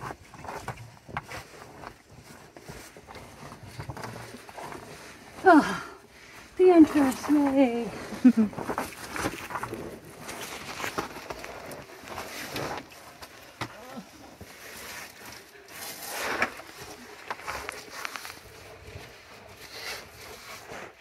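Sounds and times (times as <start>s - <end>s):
scraping and shuffling over rock: 0.0s - 21.0s.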